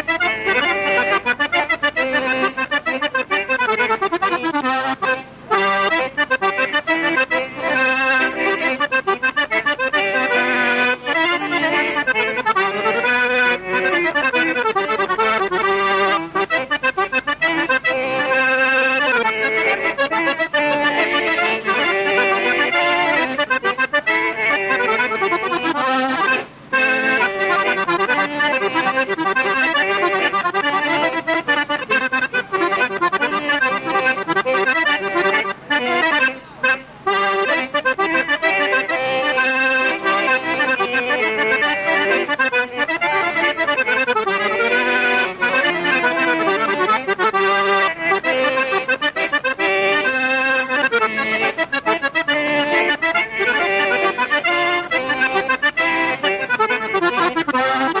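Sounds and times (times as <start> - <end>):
piano accordion playing tune: 0.0 - 58.0.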